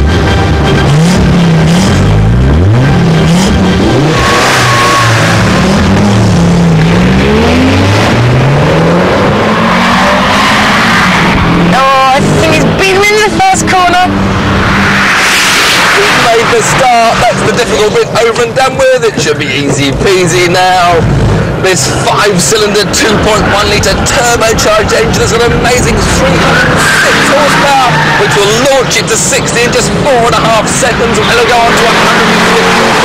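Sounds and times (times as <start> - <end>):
car engines revving: 0.0 - 33.0
tyre squeal: 26.3 - 28.8.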